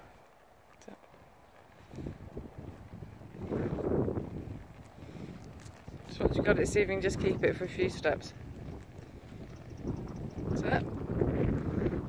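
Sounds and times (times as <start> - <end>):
wind buffeting microphone: 1.1 - 12.0.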